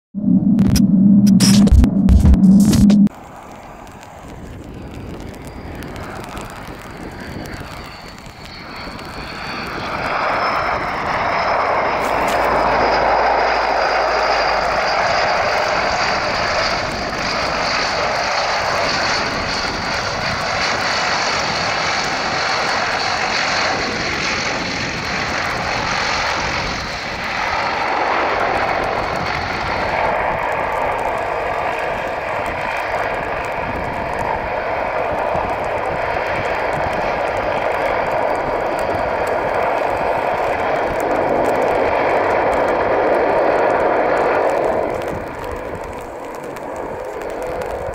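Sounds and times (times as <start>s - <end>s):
turboprop engines with turbine whine: 0.1s - 47.9s.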